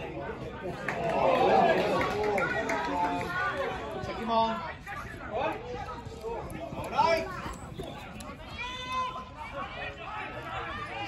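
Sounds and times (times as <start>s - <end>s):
voices talking and calling out: 0.0s - 11.0s.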